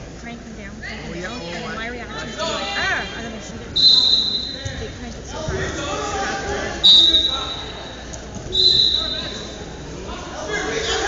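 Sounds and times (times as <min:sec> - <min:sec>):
referee's whistle: 0:03.8 - 0:04.8, 0:06.8 - 0:07.8, 0:08.5 - 0:09.6.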